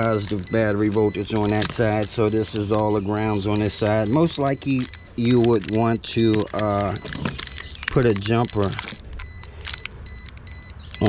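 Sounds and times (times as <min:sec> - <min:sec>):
faint high broken beeping tone: 0:00.0 - 0:11.0
light clicks and rustling: 0:00.0 - 0:11.0.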